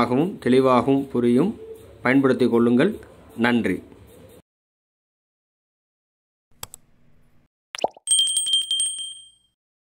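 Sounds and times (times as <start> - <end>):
small bell rung rapidly: 8.1 - 9.6.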